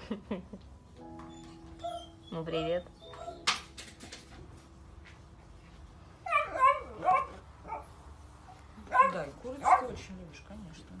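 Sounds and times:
puppy barking: 6.2 - 8.0, 8.9 - 10.0.

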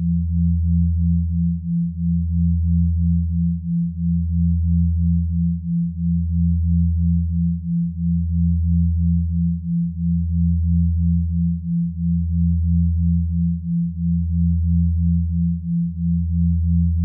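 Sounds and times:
deep steady sine hum: 0.0 - 17.0.

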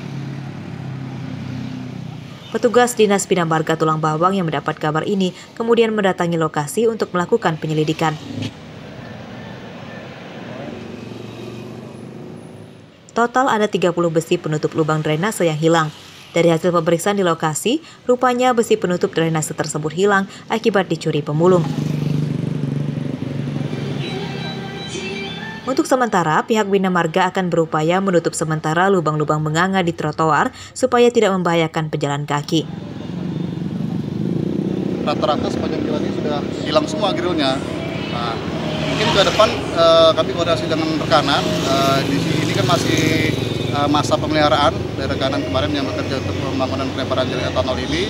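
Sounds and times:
passing vehicle engines: 0.0 - 30.9, 32.3 - 48.0.

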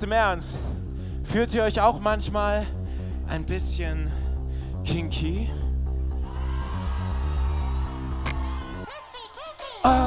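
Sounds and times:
pulsing bass line: 0.0 - 8.8.

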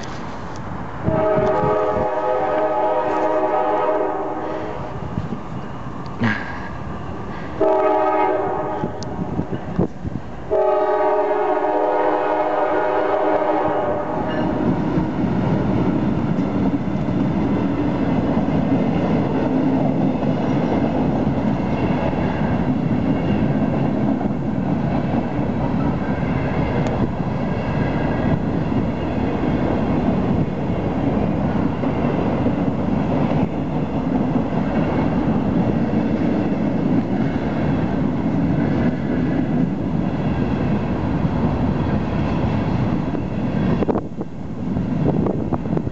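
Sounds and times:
freight train rumbling: 0.0 - 45.9
locomotive horn blasts: 1.1 - 4.9, 7.6 - 9.3, 10.5 - 14.7.

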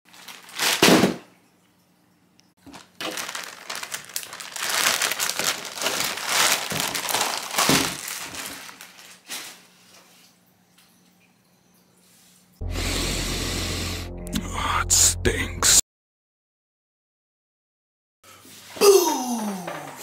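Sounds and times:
plastic bag crinkling: 0.1 - 1.2, 2.6 - 9.8.

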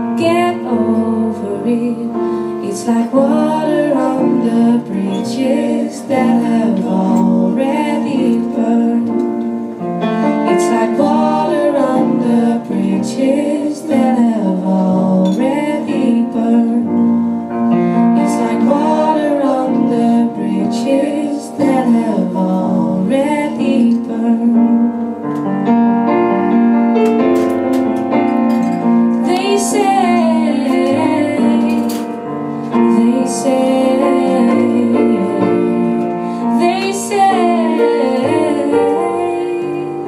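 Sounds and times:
woman singing: 0.0 - 9.6, 10.4 - 17.2, 17.9 - 25.1, 29.1 - 40.0
piano chords: 0.0 - 40.0.

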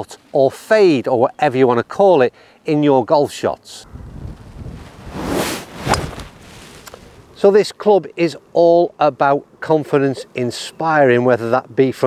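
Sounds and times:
wind on microphone: 3.8 - 7.4
golf club striking ball: 5.8 - 6.3.

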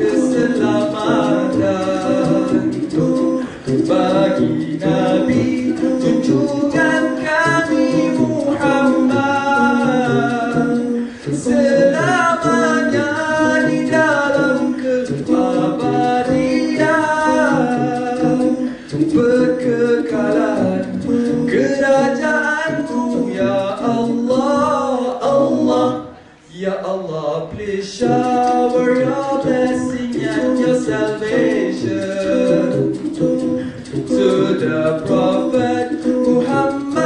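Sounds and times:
male vocal group singing harmony: 0.0 - 37.0.

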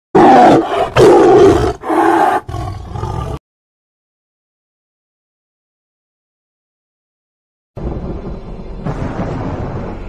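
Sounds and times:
tiger roaring: 0.2 - 3.4.

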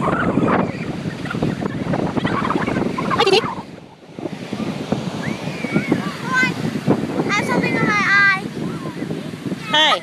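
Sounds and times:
surf breaking on beach: 0.0 - 10.0
wind buffeting microphone: 0.0 - 10.0.

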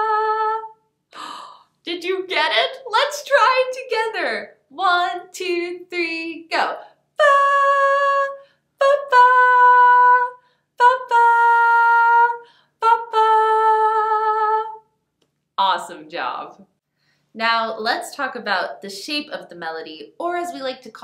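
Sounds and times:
woman singing unaccompanied: 0.0 - 14.8.

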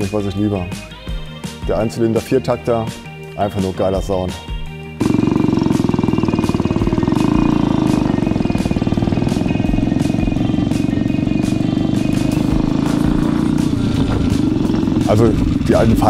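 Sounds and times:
motorcycle engine running: 4.0 - 16.0.

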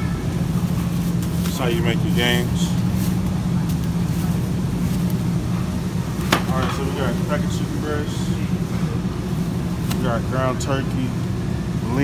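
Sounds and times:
refrigerator and ventilation hum: 0.0 - 12.0.

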